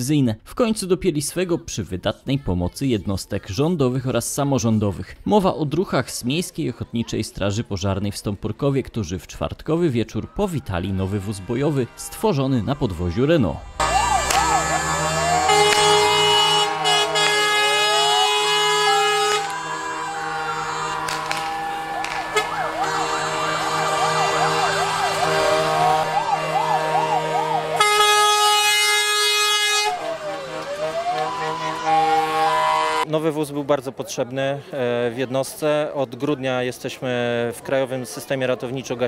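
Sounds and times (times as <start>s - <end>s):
fire engine sirens wailing: 10.0s - 33.1s
truck air horn blasts: 10.9s - 33.1s.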